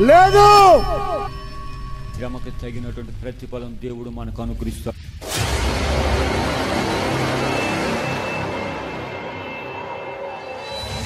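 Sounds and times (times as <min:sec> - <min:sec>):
faint high tone: 0:00.0 - 0:03.4.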